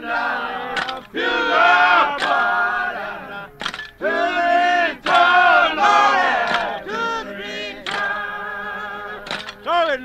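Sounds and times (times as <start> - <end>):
men singing a work song: 0.0 - 10.0.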